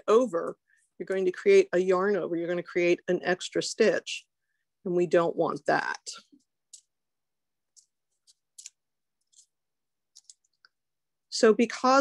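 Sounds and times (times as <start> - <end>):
knitting needles clicking: 6.6 - 7.0, 7.7 - 10.7.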